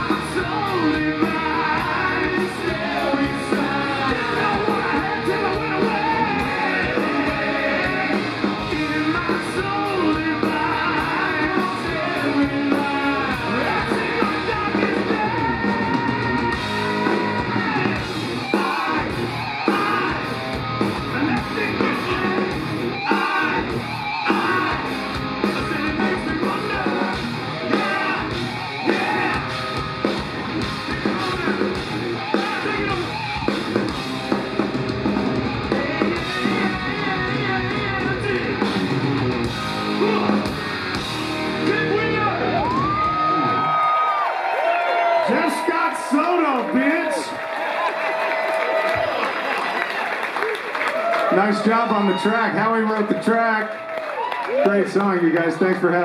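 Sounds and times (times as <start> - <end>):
men singing and shouting: 0.0 - 43.7
hard rock band playing: 0.0 - 49.4.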